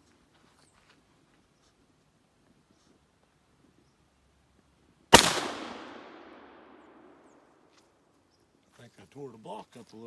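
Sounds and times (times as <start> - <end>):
shotgun shot with echo: 5.1 - 7.2.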